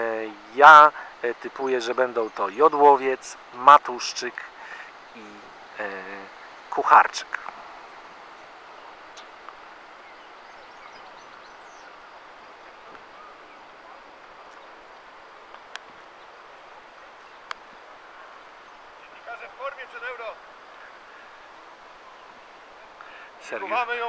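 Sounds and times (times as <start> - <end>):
distant voice calling: 0.0 - 24.0
outdoor background hiss: 0.0 - 24.0.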